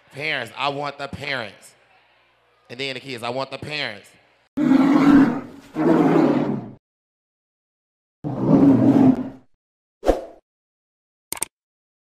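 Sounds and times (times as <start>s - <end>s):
animal roar: 4.6s - 6.8s, 8.2s - 9.4s.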